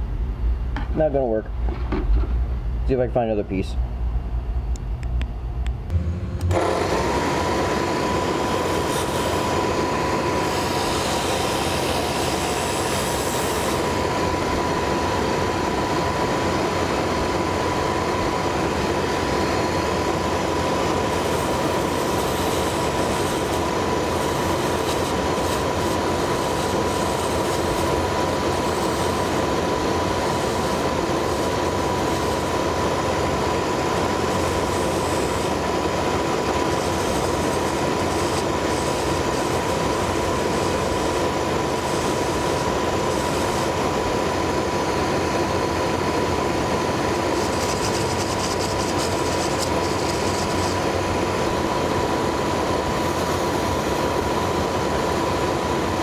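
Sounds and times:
dust extraction rushing: 5.9s - 56.0s
lathe high whine: 5.9s - 56.0s.

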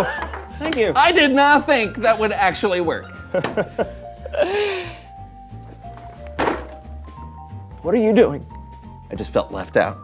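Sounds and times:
light background music: 0.0s - 10.0s
shoe thunk on wooden table: 6.4s - 6.8s.

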